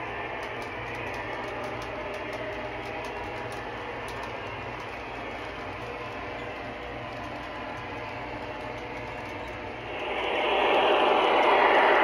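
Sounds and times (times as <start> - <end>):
model train rumbling and hissing: 0.0 - 12.0.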